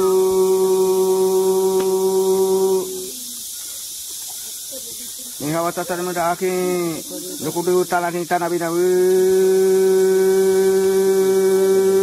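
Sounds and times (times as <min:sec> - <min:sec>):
person chanting a long note: 0:00.0 - 0:03.3, 0:08.8 - 0:12.0
faint hiss: 0:00.0 - 0:12.0
person speaking: 0:04.6 - 0:08.8.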